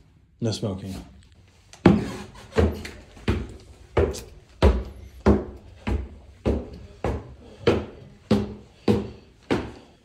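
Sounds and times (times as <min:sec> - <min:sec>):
heavy footsteps on wood: 0:01.8 - 0:10.0.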